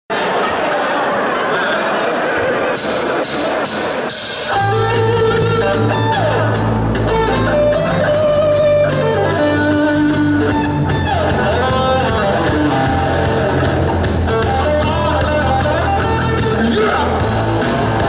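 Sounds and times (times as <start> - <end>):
drum kit beat: 2.7 - 18.0
distorted electric guitars: 2.8 - 18.0
bass guitar: 4.5 - 18.0.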